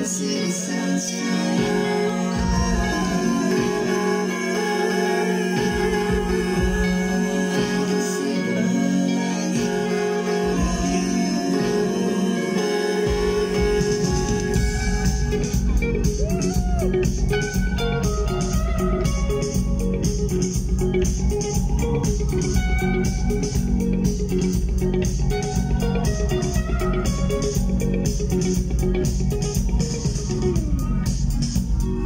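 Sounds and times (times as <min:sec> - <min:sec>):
bass guitar: 0:00.0 - 0:32.0
electric guitar: 0:00.0 - 0:32.0
drum beat with ticking cymbal: 0:05.6 - 0:08.0, 0:13.1 - 0:32.0.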